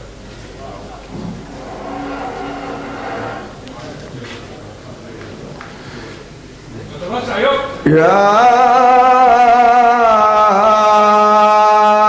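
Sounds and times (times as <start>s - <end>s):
man reciting melodically: 7.8s - 12.0s.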